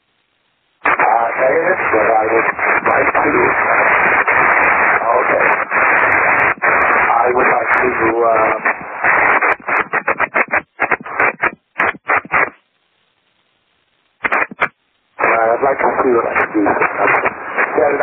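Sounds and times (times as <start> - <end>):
radio hiss: 0.8 - 12.6, 14.1 - 18.0
speech over radio: 0.9 - 4.3, 4.9 - 5.7, 7.1 - 8.8, 14.3 - 18.0.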